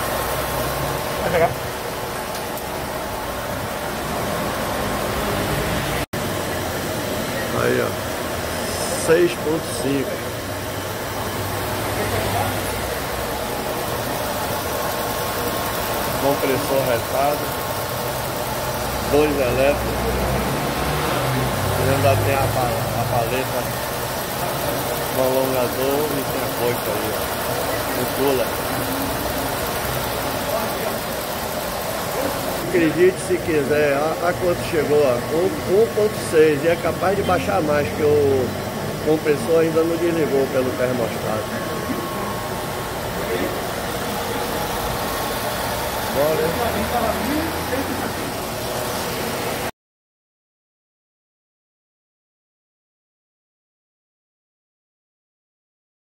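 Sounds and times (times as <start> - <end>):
car engine idling: 0.0 - 49.7.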